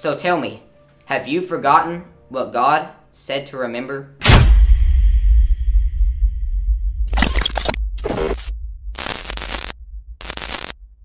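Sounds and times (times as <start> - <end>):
steady low hum: 5.4 - 11.0
harsh static bursts: 7.1 - 10.8.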